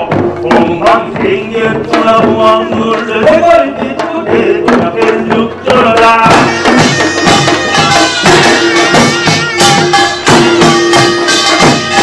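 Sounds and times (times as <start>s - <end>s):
hourglass drums and barrel drums: 0.0s - 12.0s
reedy melodic line: 6.4s - 12.0s.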